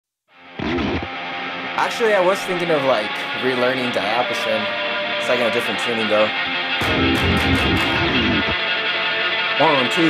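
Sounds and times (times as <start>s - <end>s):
guitar sustained chord: 0.6s - 10.0s.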